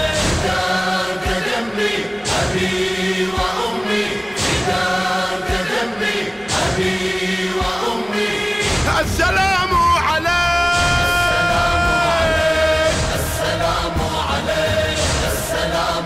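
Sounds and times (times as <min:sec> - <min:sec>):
choir chanting: 0:00.0 - 0:16.0.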